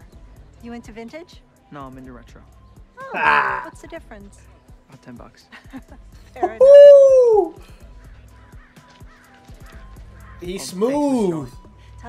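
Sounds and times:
man exclaiming ooh: 3.0s - 3.7s, 6.4s - 7.6s.

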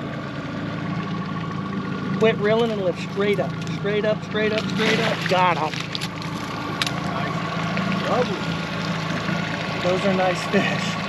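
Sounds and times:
outboard motor humming: 0.0s - 11.0s.

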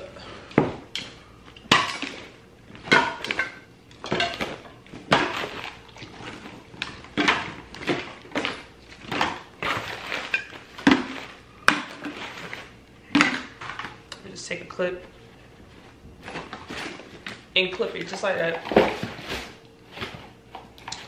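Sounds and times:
plastic bottles knocking together: 1.7s - 13.9s.

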